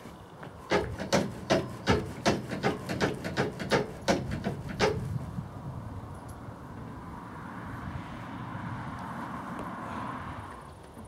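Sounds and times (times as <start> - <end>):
knocking on horse trailer: 0.7 - 5.0.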